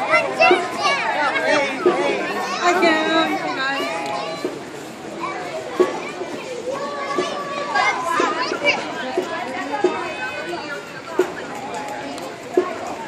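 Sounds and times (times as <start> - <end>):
children chattering and calling out: 0.0 - 13.0.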